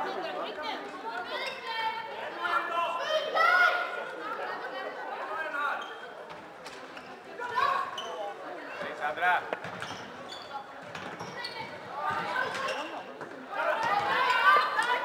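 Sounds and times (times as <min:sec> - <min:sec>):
players shouting in echoing hall: 0:00.0 - 0:06.2, 0:11.3 - 0:15.0.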